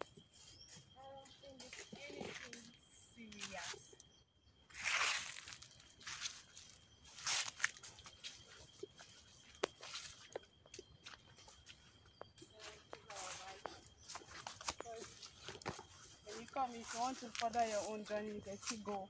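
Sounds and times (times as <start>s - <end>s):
faint indistinct speech: 1.0s - 4.0s
footsteps through dry leaves: 4.7s - 10.4s, 12.5s - 19.0s.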